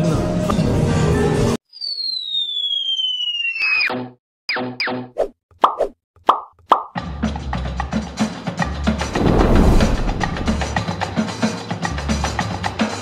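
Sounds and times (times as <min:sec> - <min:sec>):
falling whistle-like tone: 0:01.7 - 0:03.9.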